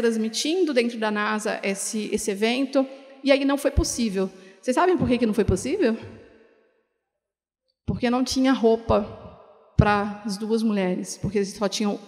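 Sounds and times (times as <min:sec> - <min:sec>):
woman speaking: 0:00.0 - 0:06.1, 0:07.9 - 0:09.2, 0:09.8 - 0:12.0.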